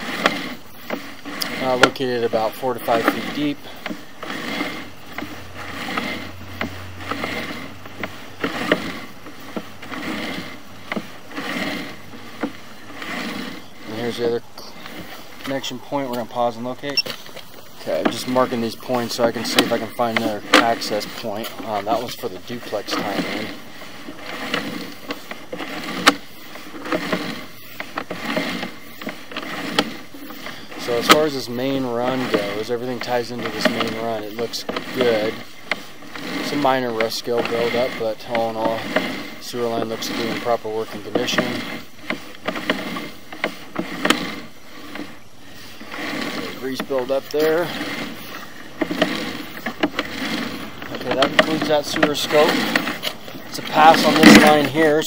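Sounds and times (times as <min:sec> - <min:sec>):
cable swishing: 0:00.0 - 0:55.0.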